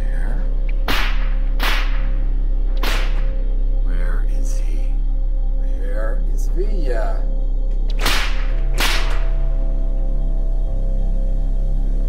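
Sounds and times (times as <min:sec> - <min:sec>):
low music drone: 0:00.0 - 0:12.0
sharp swishing cracks: 0:00.8 - 0:02.2, 0:02.8 - 0:03.3, 0:08.0 - 0:09.3.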